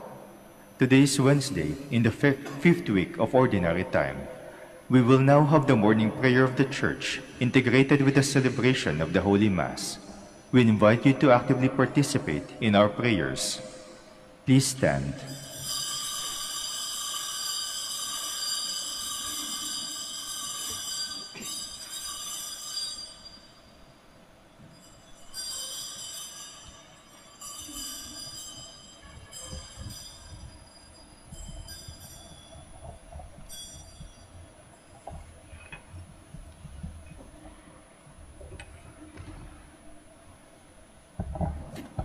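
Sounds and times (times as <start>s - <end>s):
bells ringing: 0.6s - 35.7s.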